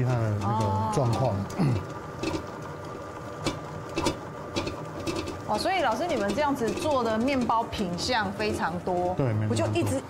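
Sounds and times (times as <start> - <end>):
stand mixer motor whirring: 0.0 - 10.0.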